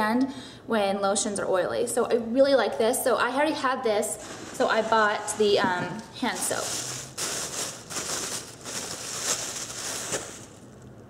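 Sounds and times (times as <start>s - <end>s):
rustling of items: 4.1s - 10.9s.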